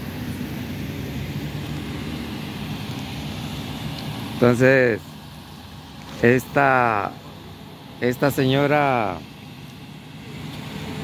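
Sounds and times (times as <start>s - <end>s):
street noise: 0.0s - 11.0s
vehicle engine running: 0.0s - 11.0s.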